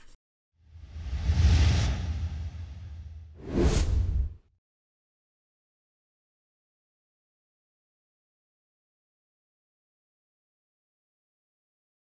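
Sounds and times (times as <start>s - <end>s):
whoosh with low rumble: 0.8s - 4.4s.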